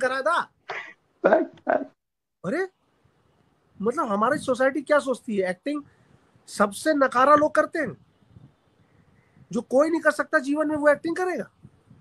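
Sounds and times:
man speaking: 0.0 - 0.6, 1.2 - 2.8, 3.8 - 5.9, 6.5 - 8.0, 9.5 - 11.5.

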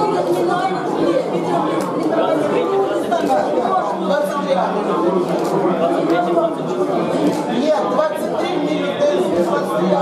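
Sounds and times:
babble of overlapping voices: 0.0 - 10.0.

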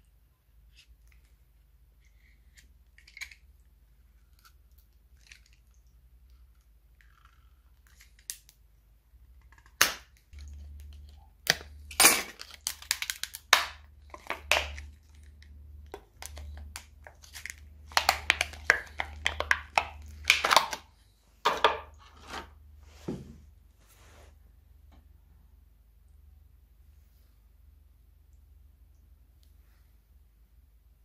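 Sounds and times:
plastic mould crackling and snapping: 2.4 - 5.8, 9.4 - 20.9.

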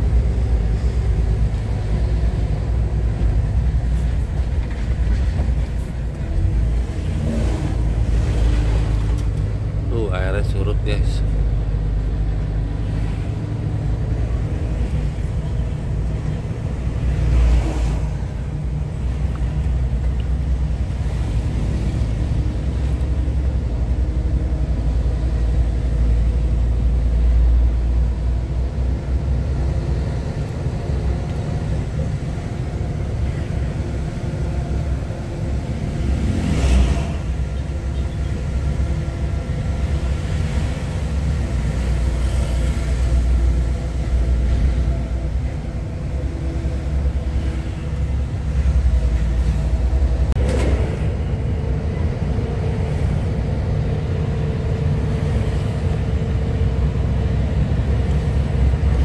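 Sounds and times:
road noise: 0.0 - 59.0
truck diesel engine running: 0.0 - 59.0.

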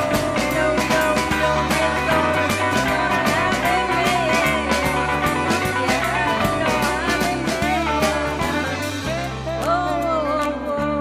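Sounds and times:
rock backing track: 0.0 - 11.0
woman singing into a microphone: 0.0 - 11.0.

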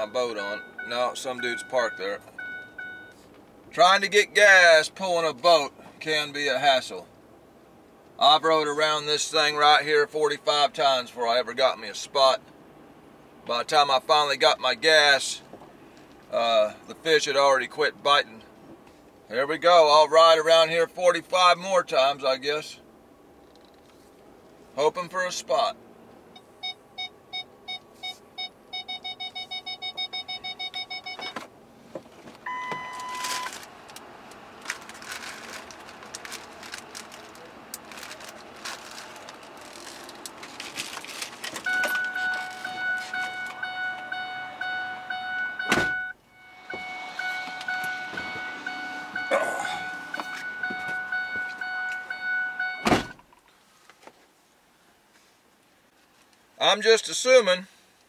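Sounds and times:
electronic warning beeps: 0.0 - 3.2, 26.4 - 31.4, 32.5 - 33.6, 41.6 - 53.2
short higher beep: 0.0 - 3.2, 32.5 - 33.5, 41.7 - 52.9
steady warning chime: 0.0 - 3.2, 26.4 - 31.4, 32.5 - 33.6, 41.6 - 52.9.

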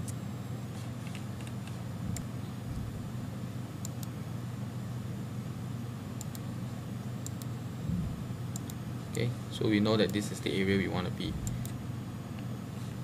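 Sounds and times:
steady low hum: 0.0 - 13.0
computer mouse clicking: 3.8 - 4.1, 6.2 - 6.4, 8.5 - 8.8.

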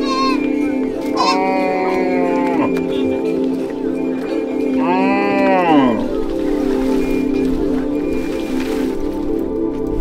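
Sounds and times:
background music with held tones: 0.0 - 10.0
cow mooing: 1.1 - 3.0, 4.8 - 6.1.

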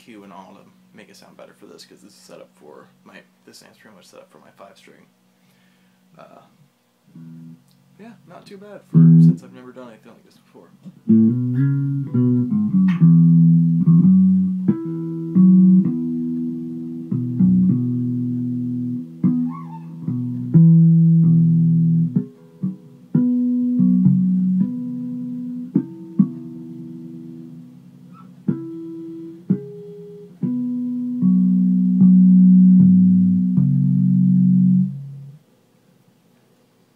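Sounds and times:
fretless bass plucked notes: 7.1 - 7.6, 8.9 - 9.5, 10.9 - 35.4.

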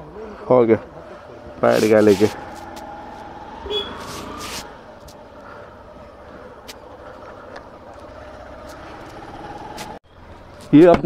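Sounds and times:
motorcycle engine running: 1.2 - 10.6.

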